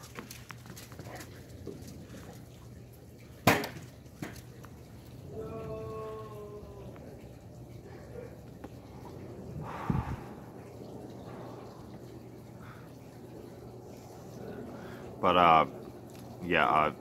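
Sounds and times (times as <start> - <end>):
quiet outdoor background: 0.0 - 17.0
person exhaling smoke: 9.6 - 10.5.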